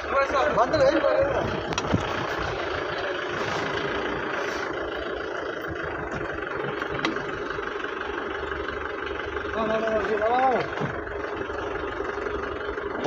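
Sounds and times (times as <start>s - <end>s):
engine and road noise: 0.0s - 13.0s.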